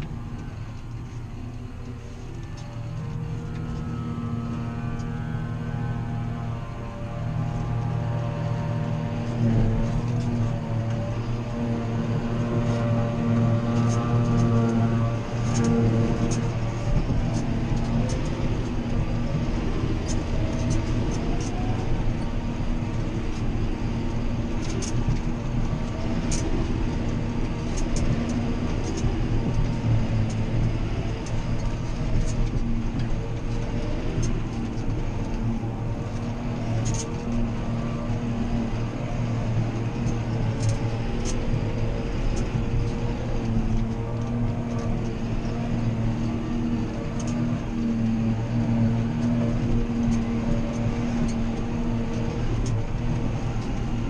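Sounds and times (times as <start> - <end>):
forage harvester droning: 0.0 - 54.0
tractor diesel engine running: 0.0 - 54.0.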